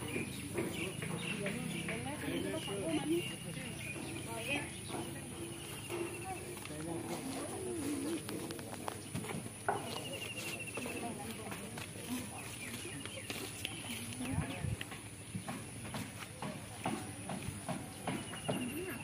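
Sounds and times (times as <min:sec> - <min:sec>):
faint voices talking: 0:00.0 - 0:19.0.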